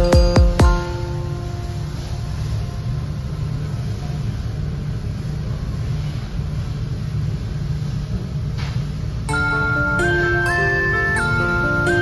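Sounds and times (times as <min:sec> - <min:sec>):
restaurant room rumble: 0:00.8 - 0:12.0.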